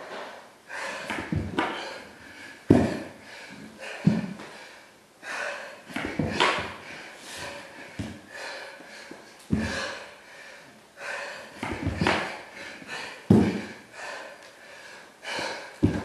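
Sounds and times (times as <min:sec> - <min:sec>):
man panting: 0:00.7 - 0:16.0
thuds on hardwood floor: 0:01.1 - 0:01.8, 0:02.7 - 0:03.1, 0:04.0 - 0:04.4, 0:06.0 - 0:06.8, 0:09.5 - 0:09.8, 0:11.6 - 0:12.3, 0:13.3 - 0:13.7, 0:15.8 - 0:16.0.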